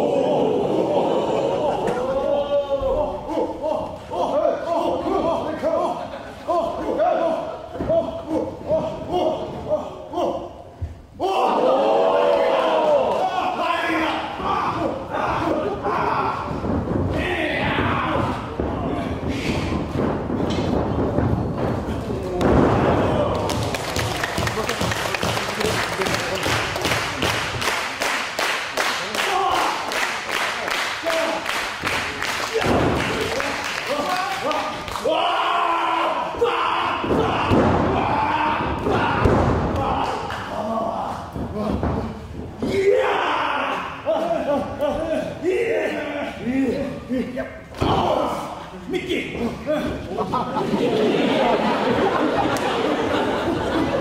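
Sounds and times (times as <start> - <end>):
people shouting: 0.0 - 5.8, 11.2 - 19.8, 22.4 - 23.8, 32.5 - 41.7, 42.6 - 46.5, 47.8 - 48.6
bodies thudding on wrestling ring: 16.3 - 25.4, 32.6 - 33.3, 37.0 - 40.3
body slam in wrestling ring: 37.1 - 39.9.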